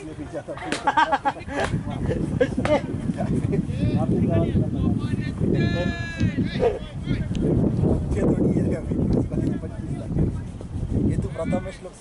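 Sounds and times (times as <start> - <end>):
player shouting: 5.6 - 7.0.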